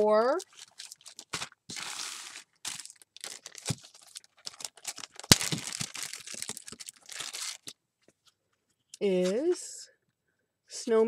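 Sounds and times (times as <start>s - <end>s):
plastic packaging crinkling: 0.0s - 7.8s.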